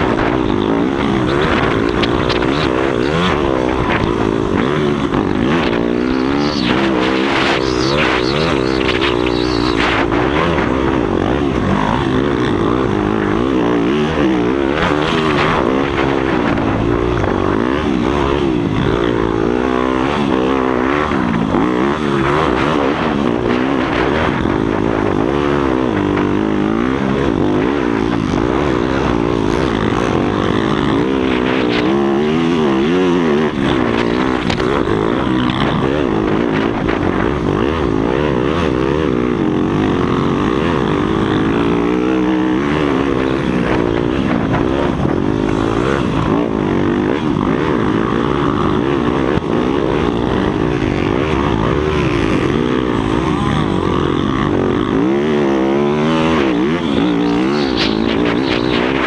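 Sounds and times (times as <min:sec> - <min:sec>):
motocross bike engine revving: 0:00.0 - 0:59.0.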